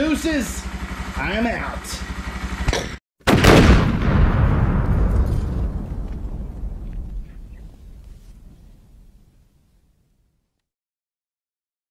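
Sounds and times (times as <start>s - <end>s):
motorcycle engine idling: 0.0s - 2.8s
deep boom: 3.3s - 9.3s.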